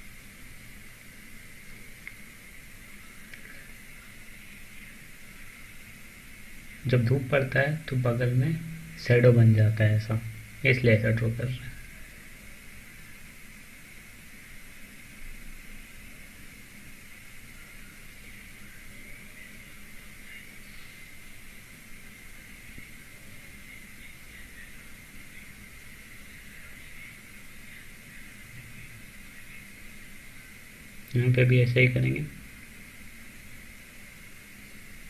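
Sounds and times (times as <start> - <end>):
faint low hum: 0.0 - 35.0
low background hiss: 0.0 - 35.0.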